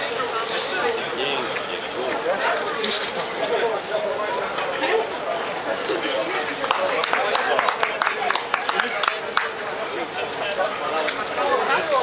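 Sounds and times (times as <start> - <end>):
people talking in background: 0.0 - 12.0
hand claps: 6.6 - 9.8.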